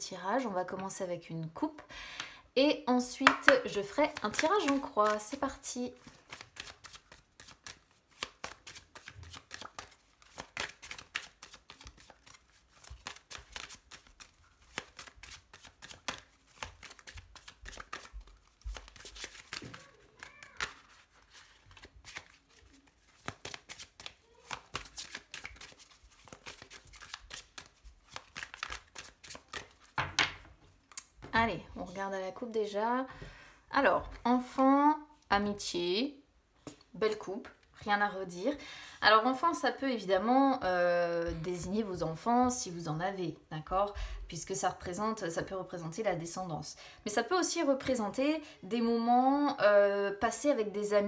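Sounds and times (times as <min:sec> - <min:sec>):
cards being shuffled: 0:03.8 - 0:31.1.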